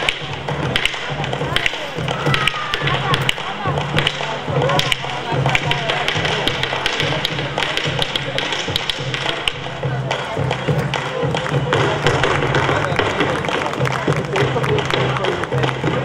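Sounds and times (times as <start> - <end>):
dancer's feet tapping a stage: 0.1 - 16.0.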